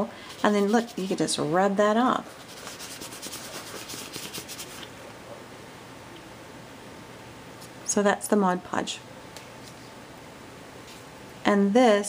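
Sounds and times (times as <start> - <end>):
paper towel rubbing paper: 0.3 - 1.4, 2.2 - 4.9.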